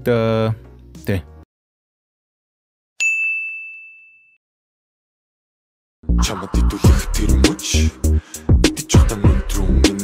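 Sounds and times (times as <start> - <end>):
high ding tone: 3.0 - 4.4.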